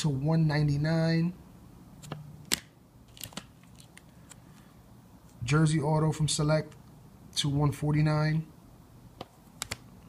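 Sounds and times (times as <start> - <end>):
plastic card holders clicking: 9.2 - 9.8.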